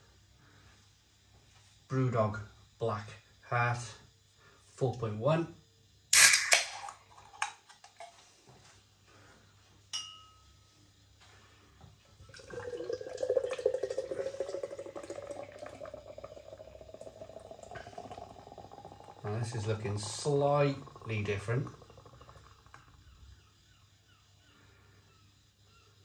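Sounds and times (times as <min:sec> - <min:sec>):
stout glugging into a glass: 0:06.5 - 0:08.2, 0:12.2 - 0:23.0.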